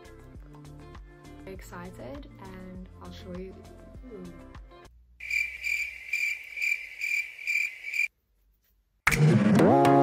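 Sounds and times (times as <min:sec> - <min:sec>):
cricket chirping: 0:05.2 - 0:08.1.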